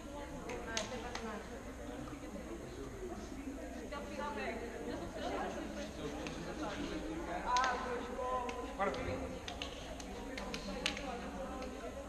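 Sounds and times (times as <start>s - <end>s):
hands slapping high-fives: 7.5s - 7.8s, 8.4s - 11.8s.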